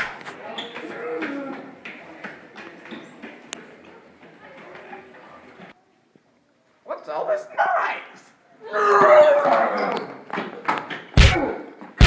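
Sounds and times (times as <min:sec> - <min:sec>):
faint echoing voices: 0:00.0 - 0:12.0.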